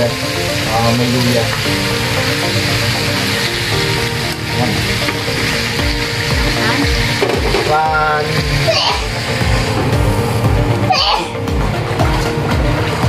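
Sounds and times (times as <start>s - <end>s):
background music: 0.0s - 13.0s
food sizzling in a wok: 0.0s - 13.0s.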